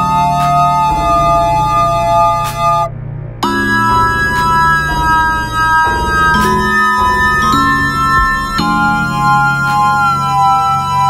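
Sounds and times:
pulsing bass line: 0.0 - 11.0
synthesizer chord: 0.0 - 11.0.

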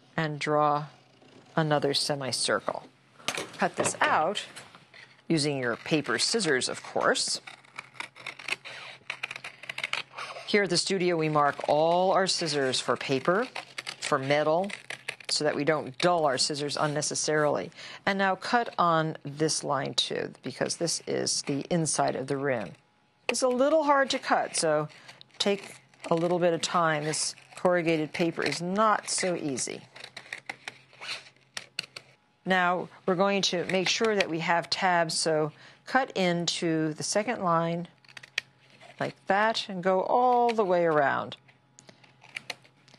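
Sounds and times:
scissors cutting corrugated paper: 3.6 - 17.6, 20.5 - 32.1, 33.3 - 34.9, 38.0 - 39.2, 40.0 - 41.3, 41.9 - 42.8.

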